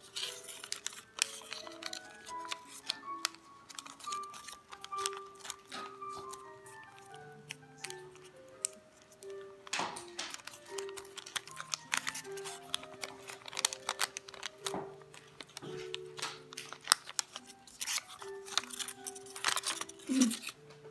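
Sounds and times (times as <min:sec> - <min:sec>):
gentle background music: 0:00.0 - 0:20.9
paper rustling and creasing: 0:00.0 - 0:20.9.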